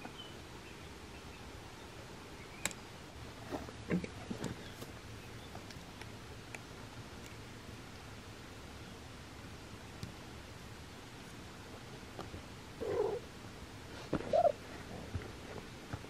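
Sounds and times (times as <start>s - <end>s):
cat purring: 12.8s - 13.2s.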